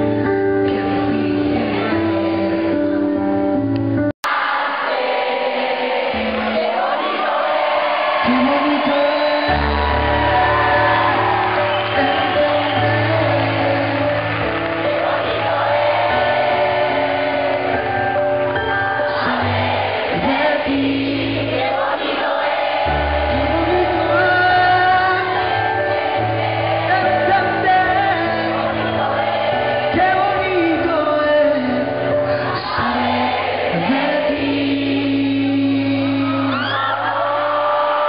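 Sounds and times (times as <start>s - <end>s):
band playing pop ballad: 0.0s - 4.1s, 7.6s - 22.0s, 22.7s - 37.3s
man singing into a microphone: 8.2s - 14.3s, 19.0s - 21.7s, 23.2s - 26.0s, 26.8s - 29.1s, 29.9s - 38.0s.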